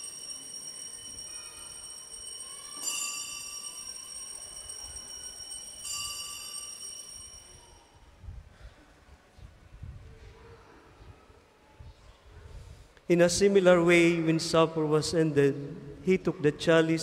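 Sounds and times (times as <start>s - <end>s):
altar bells ringing: 0.0s - 8.1s.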